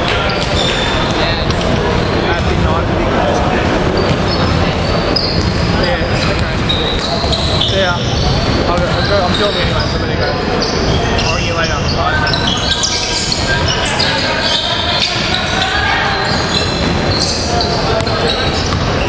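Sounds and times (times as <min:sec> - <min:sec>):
ball bouncing on hardwood court: 0:00.0 - 0:01.8, 0:16.5 - 0:19.0
players' voices echoing: 0:00.0 - 0:19.0
sneakers squeaking: 0:00.0 - 0:19.0.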